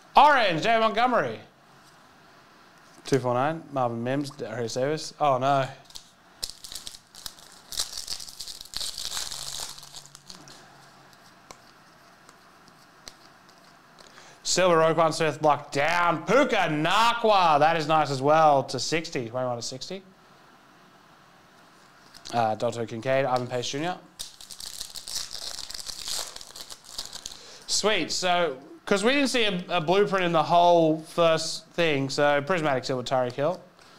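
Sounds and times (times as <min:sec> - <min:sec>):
faint handling sounds: 0:01.7 - 0:03.3, 0:05.8 - 0:14.3
foil wrapper tearing and crinkling: 0:05.8 - 0:10.6, 0:24.2 - 0:27.5.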